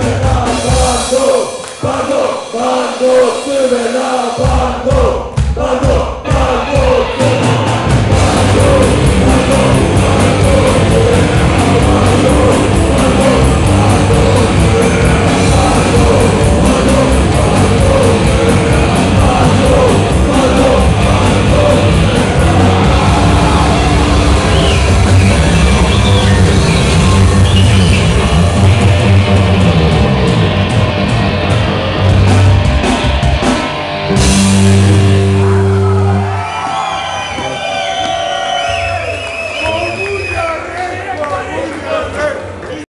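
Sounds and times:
person singing: 0:00.0 - 0:27.2
punk rock band playing: 0:00.0 - 0:39.0
crowd cheering and shouting: 0:00.0 - 0:42.9.

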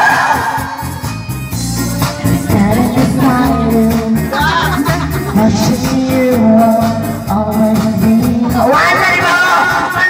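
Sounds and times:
karaoke backing track: 0:00.0 - 0:10.0.

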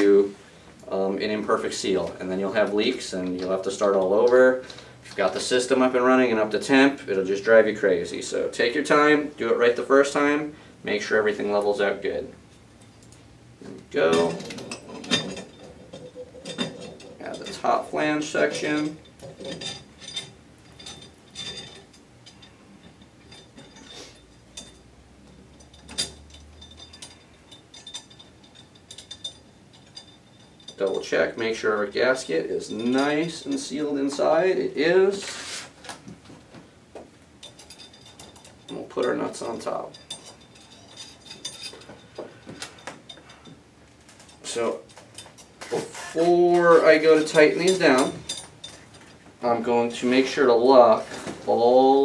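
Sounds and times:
metal nuts clinking on rods: 0:01.3 - 0:06.9, 0:13.9 - 0:35.2, 0:37.0 - 0:52.0
light metal scraping: 0:13.6 - 0:35.9, 0:37.4 - 0:52.0.

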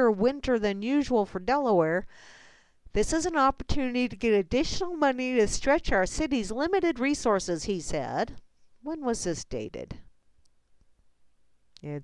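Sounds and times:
person speaking: 0:11.8 - 0:12.0.

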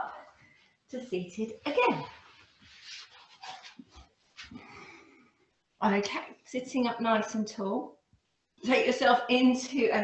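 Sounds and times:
clothing rustling on a mat: 0:01.7 - 0:05.2.

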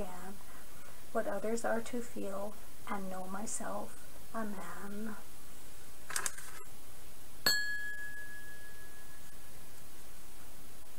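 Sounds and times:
faint steady hiss: 0:00.0 - 0:10.9
bright bell ding: 0:07.5 - 0:09.3.

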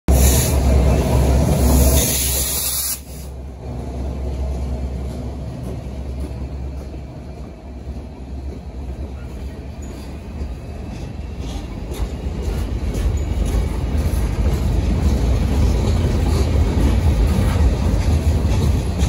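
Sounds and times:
diesel locomotive rumble: 0:00.1 - 0:19.0
train cars rolling over rails: 0:00.1 - 0:19.0
loud hiss: 0:01.6 - 0:03.4.

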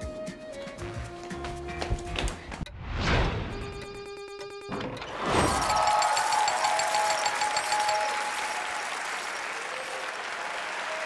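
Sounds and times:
many hands clapping: 0:05.8 - 0:11.0.

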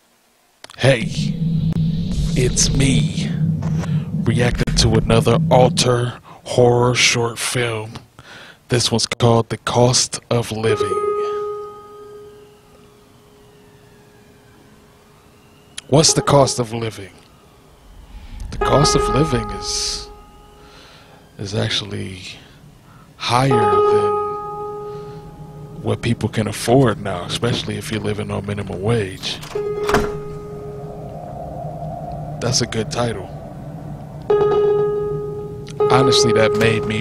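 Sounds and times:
faint high drifting tones: 0:00.6 - 0:07.6, 0:10.4 - 0:37.0
low ambient drone: 0:00.6 - 0:07.8, 0:10.2 - 0:37.0
sharp hit: 0:01.0 - 0:06.1, 0:17.6 - 0:21.4
held ringing tone: 0:10.6 - 0:37.0.

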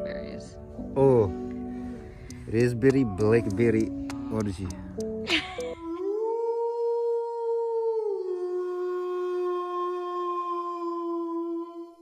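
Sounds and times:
guitar music: 0:00.0 - 0:05.9
person's voice: 0:02.3 - 0:05.8.

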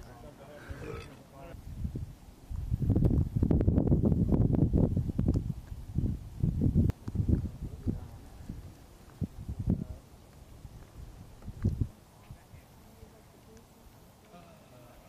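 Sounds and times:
wind buffeting microphone: 0:00.6 - 0:12.6.

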